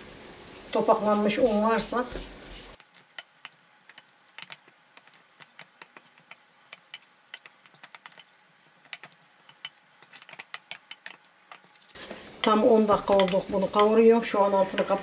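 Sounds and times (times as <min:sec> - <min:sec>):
spatula scraping metal pot: 0:12.0 - 0:15.0.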